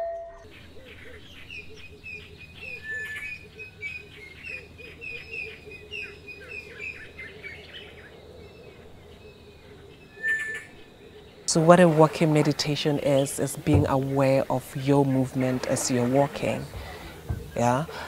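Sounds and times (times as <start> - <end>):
soft lower bird calls: 0.0 - 18.0
birds chirping: 0.4 - 18.0.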